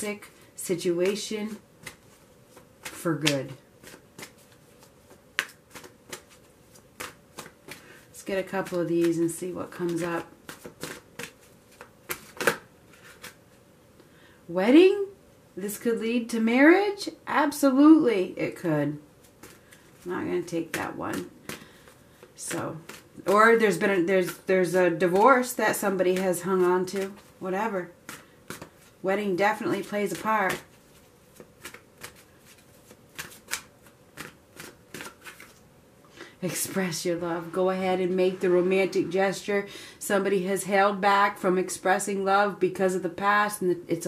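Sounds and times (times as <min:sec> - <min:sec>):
cards being drawn: 0:01.0 - 0:13.5, 0:29.6 - 0:35.6.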